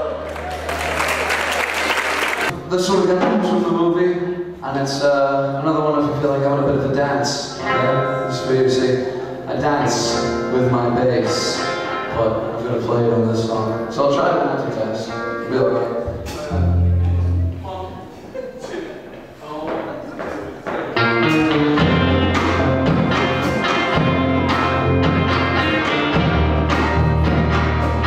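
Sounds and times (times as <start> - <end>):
indistinct talk in a hall: 0.0 - 28.0.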